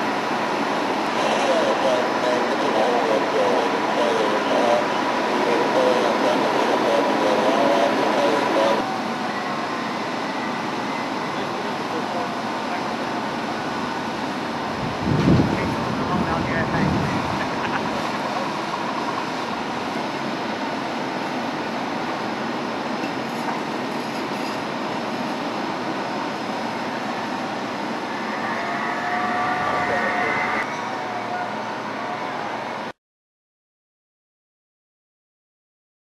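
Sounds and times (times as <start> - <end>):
fire engines droning: 0.0 - 32.9
indistinct voices: 1.1 - 8.9, 27.2 - 32.3.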